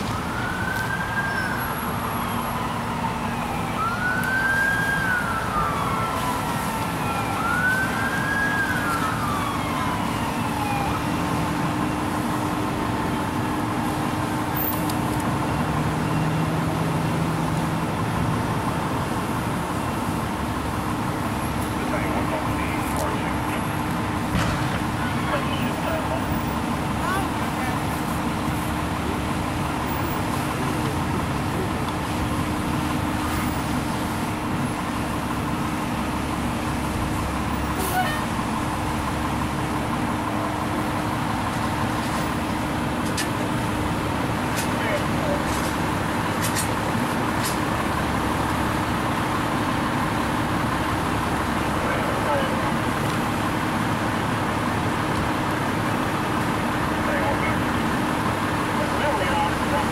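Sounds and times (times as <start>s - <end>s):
fire engine humming: 0.0s - 59.9s
outdoor noise: 0.0s - 59.9s.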